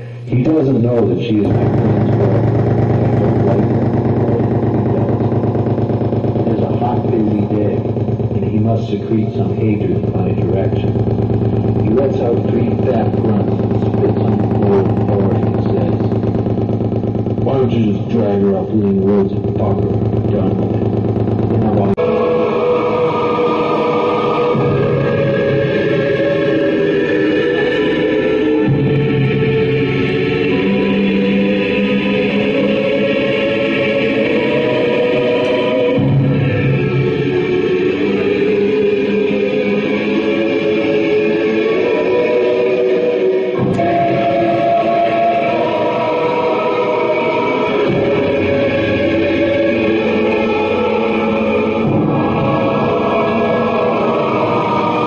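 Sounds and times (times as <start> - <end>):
electronic buzzing drone: 0.0 - 55.0.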